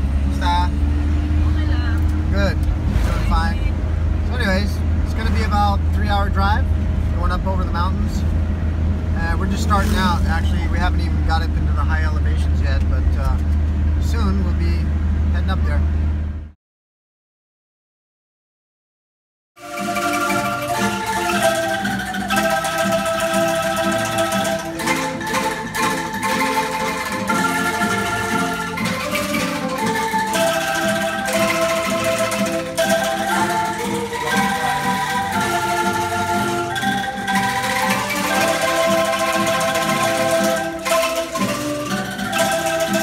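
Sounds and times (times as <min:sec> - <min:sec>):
bamboo angklung ensemble melody: 0:09.2 - 0:12.1, 0:19.6 - 0:43.0.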